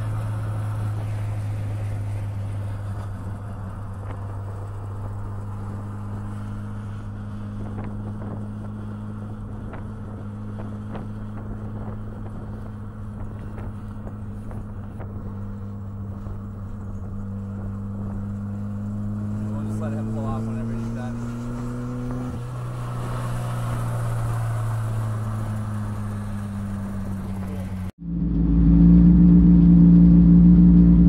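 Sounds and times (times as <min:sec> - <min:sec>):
car engine humming: 0:00.0 - 0:31.0.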